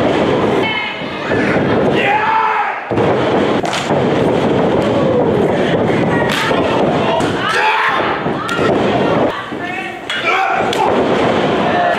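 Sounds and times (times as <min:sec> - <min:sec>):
crowd noise in hall: 0:00.0 - 0:11.9.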